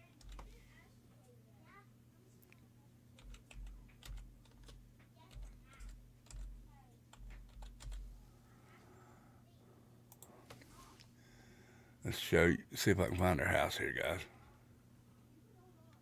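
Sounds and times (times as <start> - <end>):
typing on computer keyboard: 0.0 - 0.5, 3.2 - 8.1.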